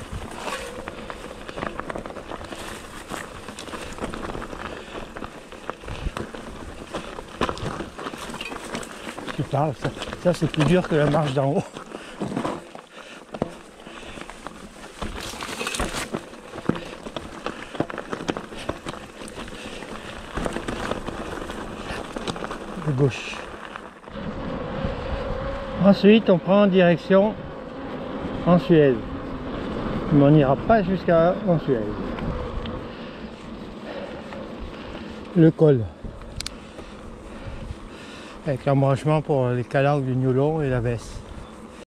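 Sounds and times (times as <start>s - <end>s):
bike rattling clicks and knocks: 0.0s - 24.2s
bike tyres crunching over stones: 0.0s - 41.8s
wind on microphone: 24.1s - 25.8s, 31.9s - 32.9s.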